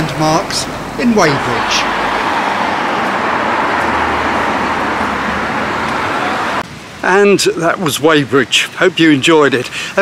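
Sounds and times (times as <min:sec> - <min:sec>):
cars driving past: 0:00.0 - 0:07.0.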